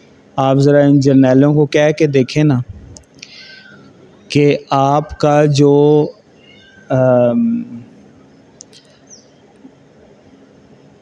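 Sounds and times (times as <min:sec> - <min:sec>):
man's drawn-out hesitation sound: 0:00.4 - 0:03.6, 0:04.2 - 0:06.3, 0:06.9 - 0:08.0.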